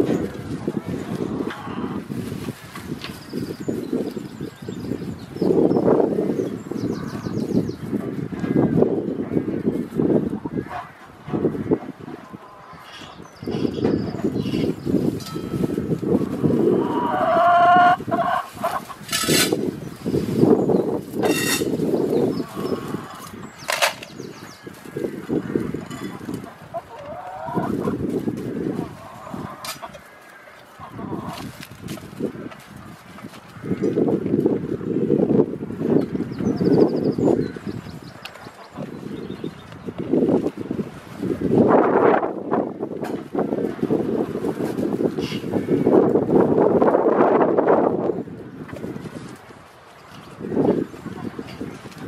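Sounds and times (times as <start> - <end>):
chickens clucking: 0.0 - 3.2, 5.5 - 34.4, 37.6 - 39.2
chicken call: 16.7 - 18.9.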